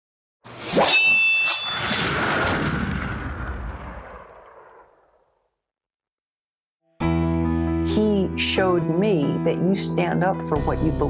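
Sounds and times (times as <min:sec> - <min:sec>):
noisy boom-like rumble: 0:02.0 - 0:05.2.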